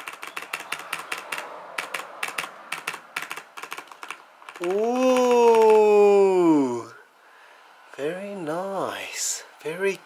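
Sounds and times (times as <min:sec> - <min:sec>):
mechanical keyboard key clicks: 0:00.0 - 0:04.8.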